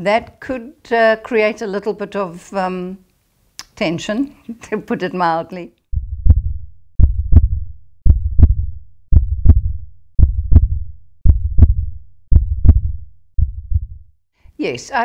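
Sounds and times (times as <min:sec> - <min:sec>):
heartbeat: 0:05.9 - 0:14.2.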